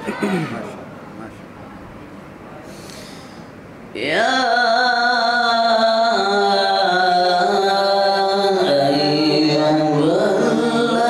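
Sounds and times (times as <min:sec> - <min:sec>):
man breathing in near microphone: 0:02.6 - 0:03.6
man chanting recitation: 0:04.0 - 0:11.0.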